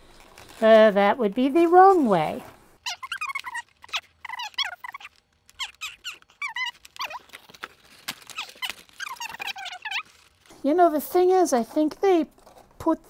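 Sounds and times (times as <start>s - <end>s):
sped-up squeaky voice: 2.8s - 7.3s, 8.4s - 10.1s.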